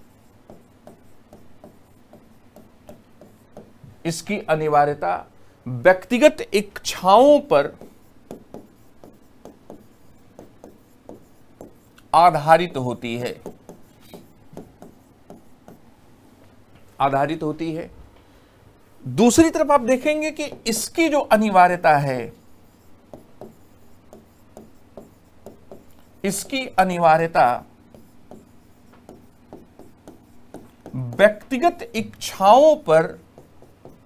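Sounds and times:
stylus tapping and scraping screen: 0.0s - 4.2s, 6.2s - 17.0s, 19.2s - 34.0s.

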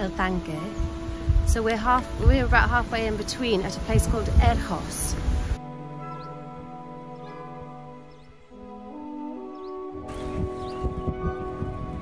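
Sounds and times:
quiet sustained chords: 0.0s - 12.0s.

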